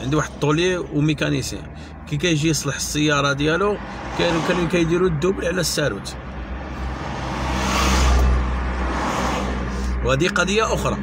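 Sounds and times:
car engine and tyre noise: 0:00.0 - 0:11.0
car passing alongside: 0:03.8 - 0:05.0, 0:06.2 - 0:10.4.

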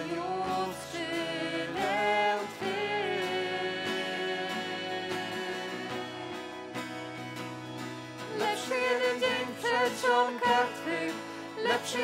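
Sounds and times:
worship band playing slow song: 0:00.0 - 0:12.0.

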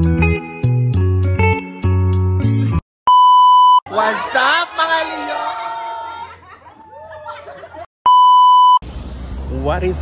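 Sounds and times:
loud electronic beep: 0:08.1 - 0:08.8.

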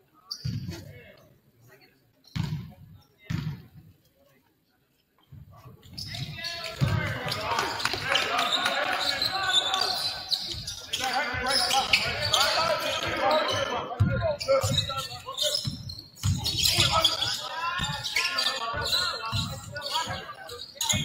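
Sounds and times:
people calling out: 0:06.4 - 0:13.8
basketball bouncing on wooden floor: 0:15.6 - 0:16.8.

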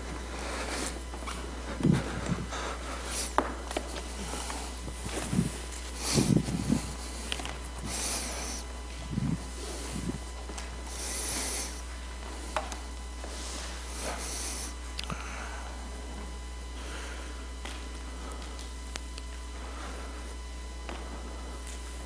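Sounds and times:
low electrical hum: 0:00.0 - 0:22.0
soft low thumps: 0:01.0 - 0:02.6.

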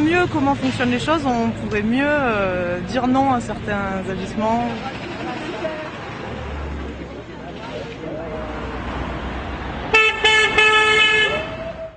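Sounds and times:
street noise: 0:00.0 - 0:11.9
horn honking: 0:09.9 - 0:11.8.

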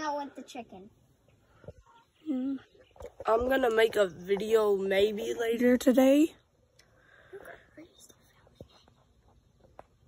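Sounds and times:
faint whispered voice: 0:07.3 - 0:09.1.

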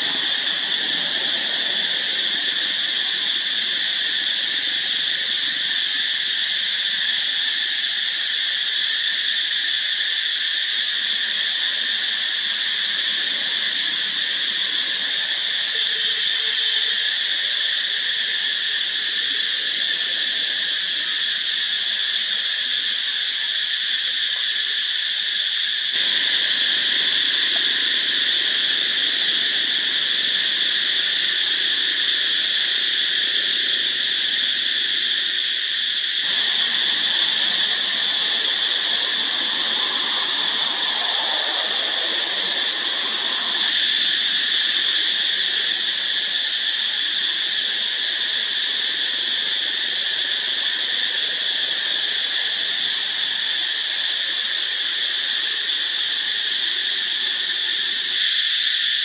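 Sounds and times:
high-pitched insect chorus: 0:00.0 - 0:59.0.

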